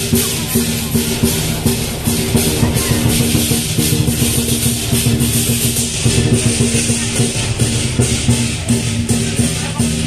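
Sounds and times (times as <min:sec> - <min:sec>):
cymbal crashes: 0:00.0 - 0:10.0
loud drumming: 0:00.0 - 0:10.0.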